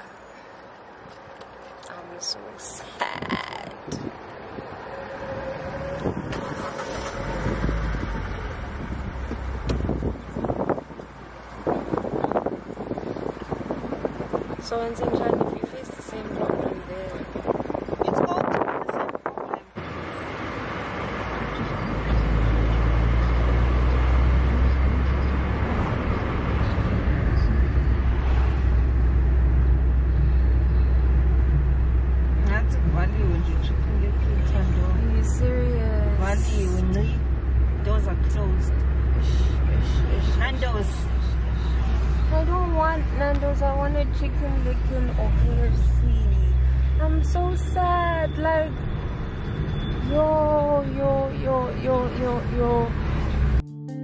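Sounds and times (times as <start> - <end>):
engine and road rumble: 0.0 - 53.8
wind noise: 3.1 - 19.8
person speaking: 34.9 - 37.3.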